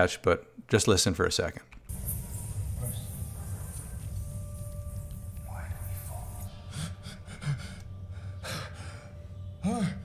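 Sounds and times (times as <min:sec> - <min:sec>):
steady low hum: 0:01.9 - 0:10.0
man speaking: 0:02.8 - 0:03.8, 0:05.4 - 0:06.7
man breathing heavily: 0:06.4 - 0:09.5.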